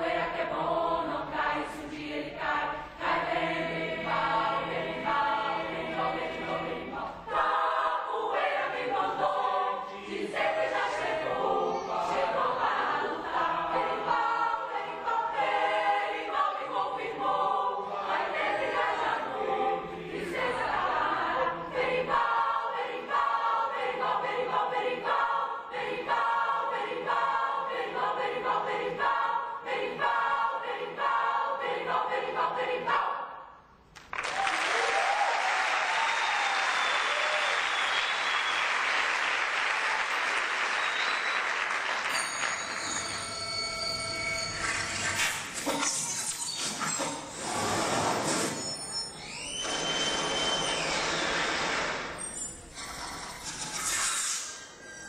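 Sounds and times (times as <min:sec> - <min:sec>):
large choir singing: 0:00.0 - 0:33.6, 0:37.7 - 0:45.6.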